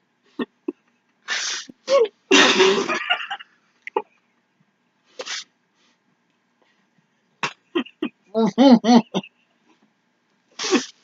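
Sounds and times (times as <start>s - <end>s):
muffled laughter: 7.7s - 9.5s.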